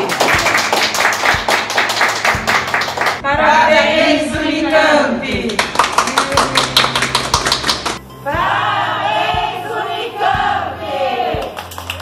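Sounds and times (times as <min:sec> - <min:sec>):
hands clapping quickly: 0:00.0 - 0:03.2, 0:05.5 - 0:08.0, 0:11.4 - 0:12.0
background music: 0:00.0 - 0:12.0.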